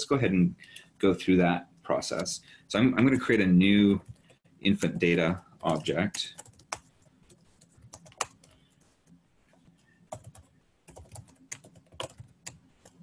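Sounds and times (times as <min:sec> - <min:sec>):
computer keyboard typing: 0:04.0 - 0:09.0, 0:09.7 - 0:13.0.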